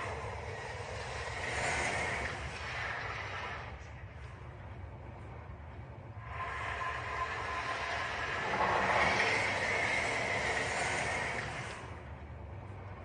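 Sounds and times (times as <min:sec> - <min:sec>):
faint steady whine: 0:00.0 - 0:13.0
rushing hissing mechanical noise: 0:06.3 - 0:11.9.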